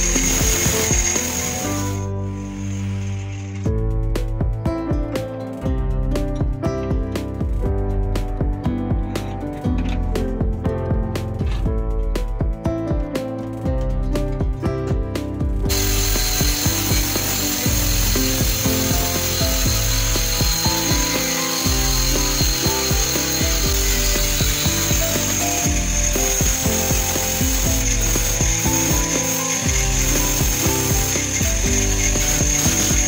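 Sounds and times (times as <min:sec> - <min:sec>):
angle grinder grinding steel: 0:00.0 - 0:03.7, 0:15.7 - 0:33.0
background music: 0:00.0 - 0:33.0.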